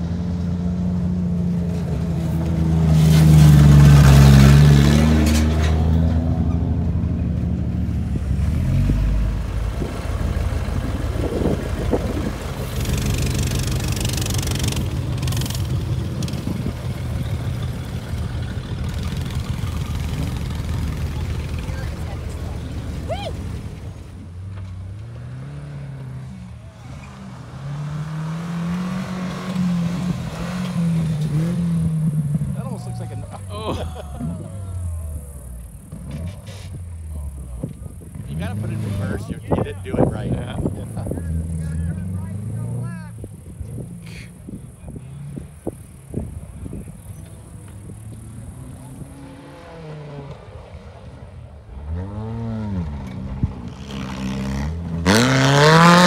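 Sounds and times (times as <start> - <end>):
car engine revving: 0.0 - 56.0
steady engine rumble: 0.0 - 56.0.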